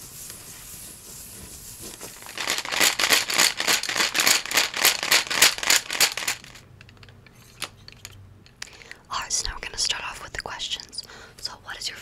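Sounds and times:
pencils rattling in plastic cup: 2.0s - 8.2s.

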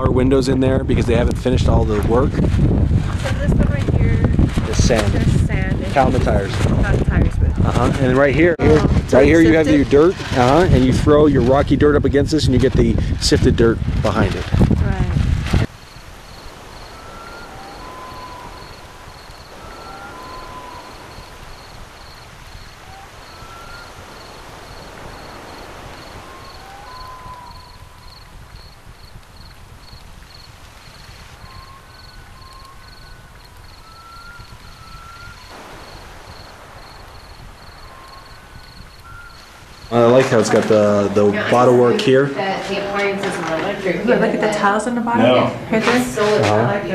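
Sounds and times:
cricket chirping: 0.0s - 13.2s, 15.4s - 46.9s
whistled bird notes: 16.3s - 28.6s, 31.3s - 40.8s.

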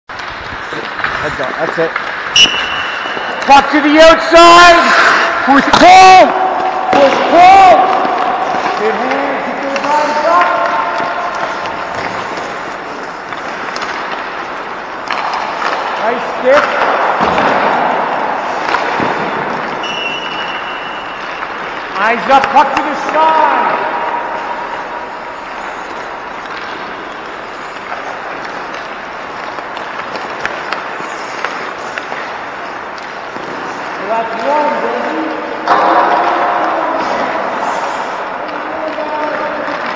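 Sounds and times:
sticks and pucks clacking: 0.1s - 39.9s
skate blades scraping on ice: 0.2s - 35.4s.

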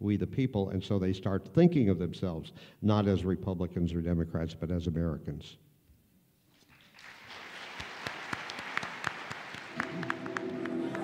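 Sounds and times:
audience applauding: 6.7s - 11.0s.

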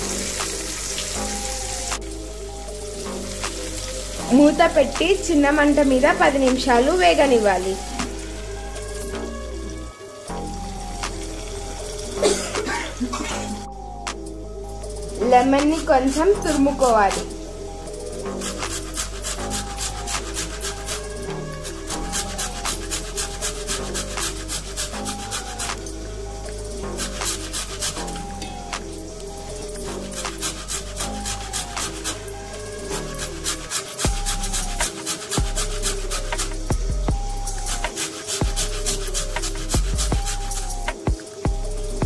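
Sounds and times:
background music: 0.0s - 42.0s
grating on metal grater: 18.4s - 25.7s, 30.1s - 32.3s, 32.9s - 36.6s, 37.6s - 40.7s.

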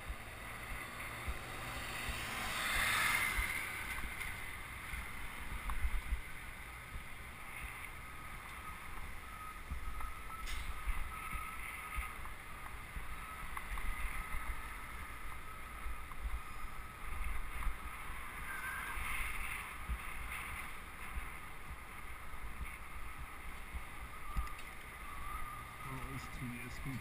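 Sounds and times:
wind buffeting microphone: 0.0s - 26.1s
road noise: 0.0s - 27.0s.

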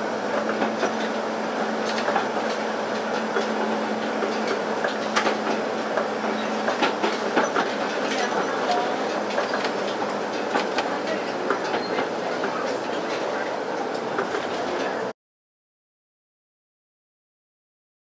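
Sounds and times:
tram rumbling on track: 0.0s - 15.2s
wheels clicking on rails: 0.3s - 15.1s.

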